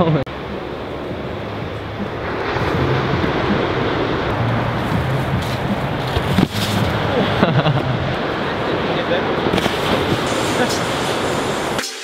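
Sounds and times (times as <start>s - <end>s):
wind buffeting microphone: 0.0s - 11.8s.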